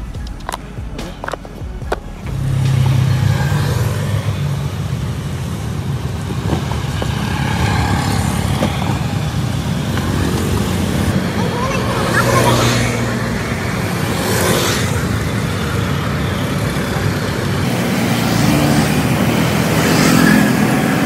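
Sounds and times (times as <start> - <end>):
motorbike engines droning: 0.0 - 21.0.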